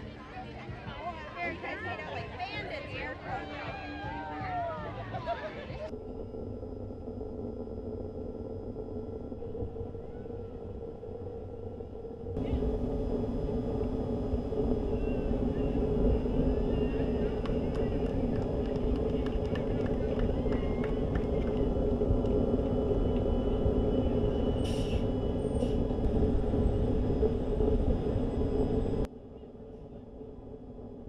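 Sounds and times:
diesel engine rumbling: 0:04.8 - 0:31.0
steady low hum: 0:04.8 - 0:31.0.

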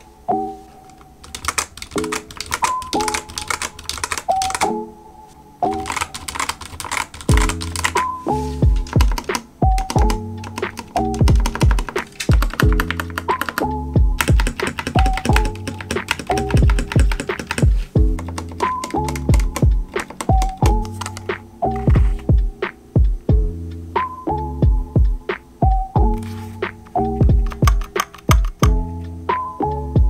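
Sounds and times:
mechanical keyboard typing: 0:01.2 - 0:04.7, 0:05.7 - 0:08.1, 0:08.8 - 0:22.0, 0:27.3 - 0:28.8
background music with deep beat: 0:05.6 - 0:30.0.

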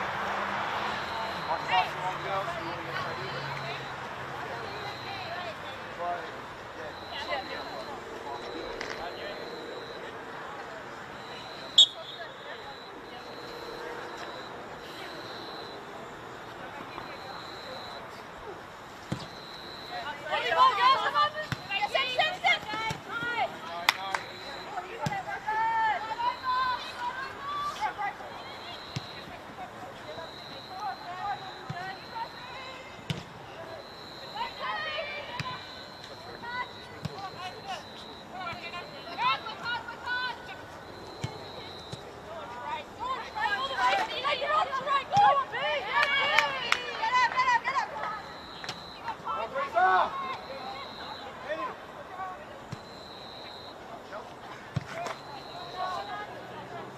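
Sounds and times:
women shouting to each other: 0:20.1 - 0:23.5, 0:24.8 - 0:28.5, 0:34.4 - 0:35.7, 0:42.7 - 0:48.3.

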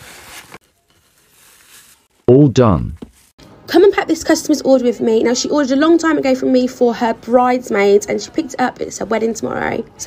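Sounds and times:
bubble wrap and paper crinkling: 0:00.0 - 0:02.2.

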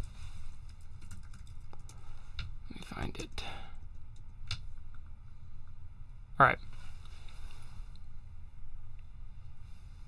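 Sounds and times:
computer keyboard clicks: 0:00.0 - 0:02.5
low room hum: 0:00.0 - 0:10.0.

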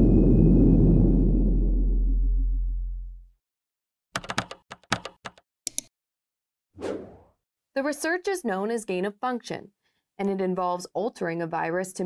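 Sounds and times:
computer keyboard typing: 0:04.2 - 0:05.9.

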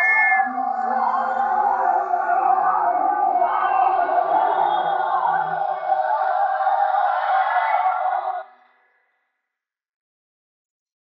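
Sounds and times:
chorus of many voices: 0:00.0 - 0:08.8.

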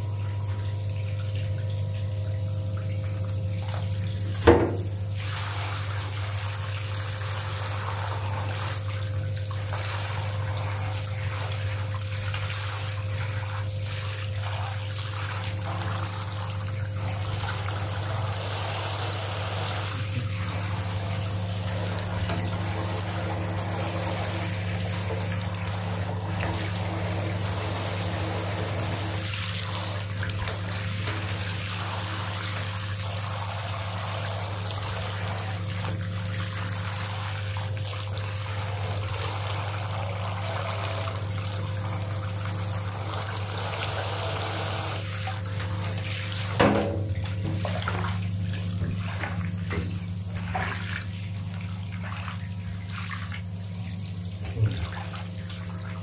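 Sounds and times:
steady low hum: 0:00.0 - 0:56.0
shower spraying into bathtub: 0:02.8 - 0:56.0.

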